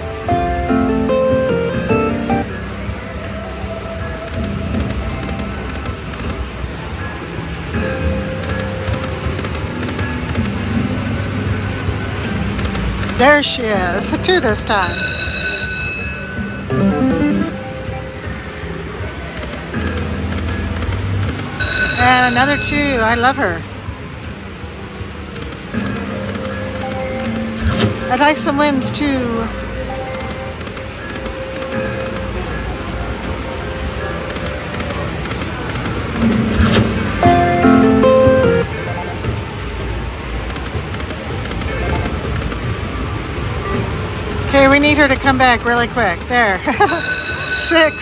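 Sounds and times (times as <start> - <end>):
casino background noise: 0.0 - 48.0
slot machine bonus music: 0.4 - 2.5, 14.4 - 17.9, 21.6 - 23.6, 36.3 - 39.2, 46.8 - 48.0
slot machine reel-spin sounds: 7.8 - 18.9, 19.5 - 24.0, 24.6 - 43.5, 44.6 - 48.0
chiming run of stepped notes: 14.2 - 18.2, 21.6 - 23.6, 37.1 - 38.7, 46.7 - 48.0.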